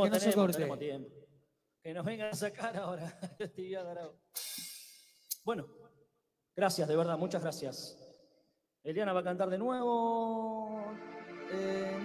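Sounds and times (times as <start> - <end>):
man talking into a microphone: 0.0 - 1.2, 1.8 - 4.2, 5.3 - 5.8, 6.6 - 8.2, 8.8 - 12.0.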